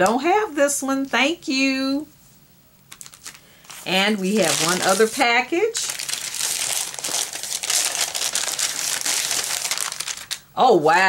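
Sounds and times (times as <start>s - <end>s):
paper envelope crinkling: 2.9s - 10.5s.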